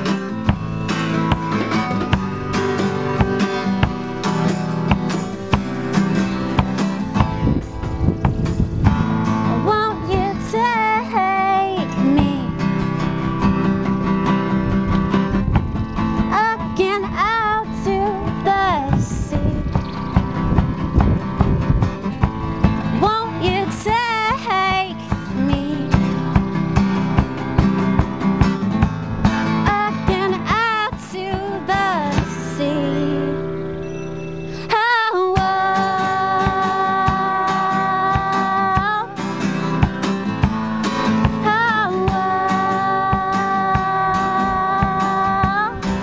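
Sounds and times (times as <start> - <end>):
steady drum beat: 0.0 - 9.6, 15.2 - 16.0, 18.7 - 32.4, 38.2 - 42.4
guitars: 0.0 - 46.0
person singing with vibrato: 9.4 - 12.7, 16.2 - 19.8, 29.6 - 39.6, 41.1 - 46.0.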